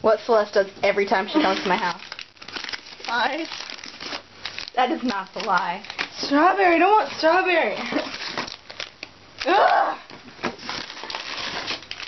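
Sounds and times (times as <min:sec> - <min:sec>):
plastic pouch crinkling: 0:01.4 - 0:09.6, 0:10.5 - 0:12.0.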